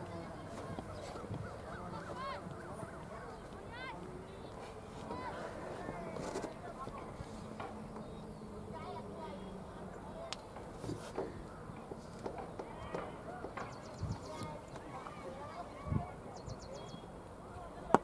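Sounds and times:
distant indistinct voices: 0.0s - 18.0s.

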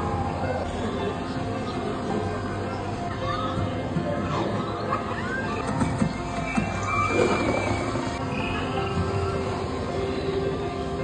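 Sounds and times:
ambient music: 0.0s - 11.0s.

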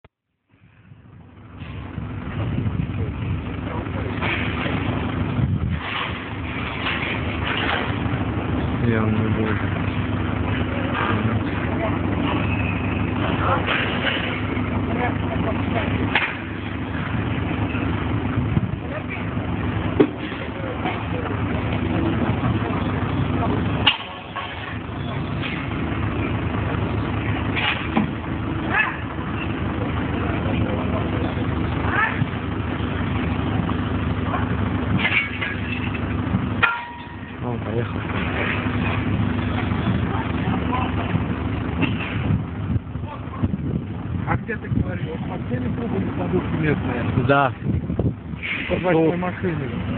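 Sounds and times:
excavator diesel engine running: 0.4s - 49.9s
sharp metal knocks and clanks: 5.7s - 8.0s, 16.1s - 16.7s, 23.8s - 25.8s, 27.5s - 28.2s, 34.9s - 36.0s, 36.6s - 37.5s.

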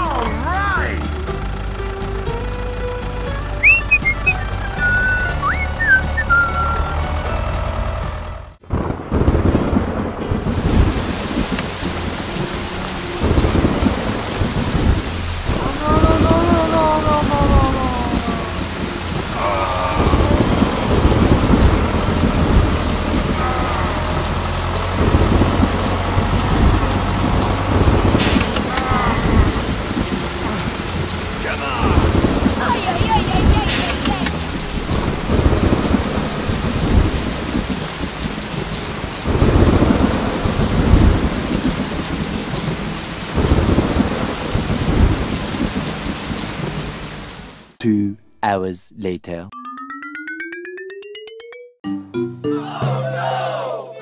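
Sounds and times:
background music: 0.0s - 8.6s, 10.3s - 40.3s, 49.5s - 54.0s
steady rain: 0.0s - 47.8s
sharp thunderclap: 8.6s - 12.4s, 13.2s - 16.6s, 20.0s - 23.4s, 33.5s - 38.4s, 39.2s - 45.9s
thunder rumbles: 8.6s - 47.2s.

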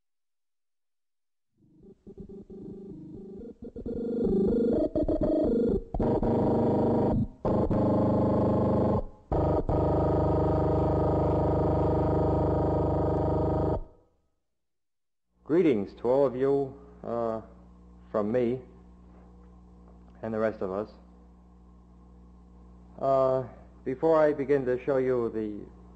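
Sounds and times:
sustained synthesizer chord: 1.6s - 13.9s
synthesizer notes: 1.7s - 13.9s.

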